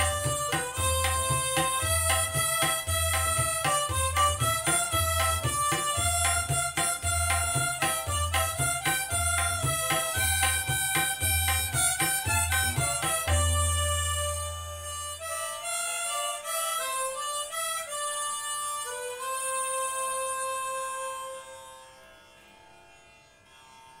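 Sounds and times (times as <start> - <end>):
tabla strokes: 0.0 - 15.4
harmonicas playing melody: 0.0 - 22.4.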